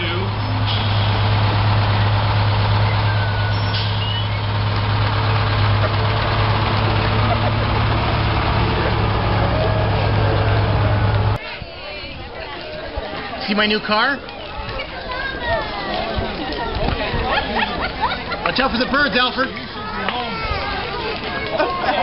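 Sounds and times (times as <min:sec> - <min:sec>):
fire engine engine running: 0:00.0 - 0:11.4.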